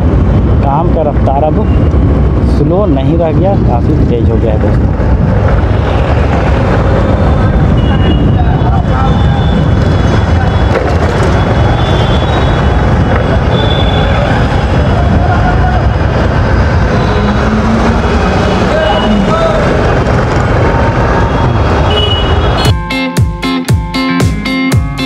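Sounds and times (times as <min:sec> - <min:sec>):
street traffic noise: 0:00.0 - 0:25.0
guitar music: 0:22.7 - 0:25.0.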